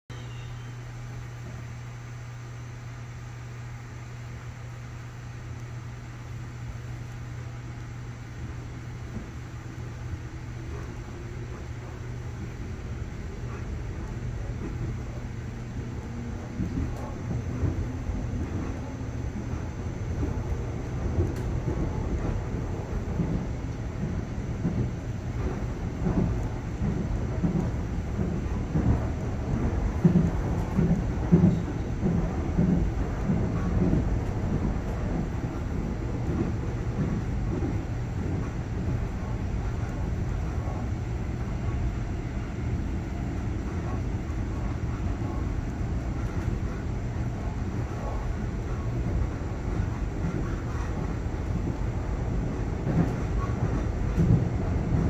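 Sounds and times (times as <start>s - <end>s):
train rumbling inside carriage: 0.1s - 55.0s.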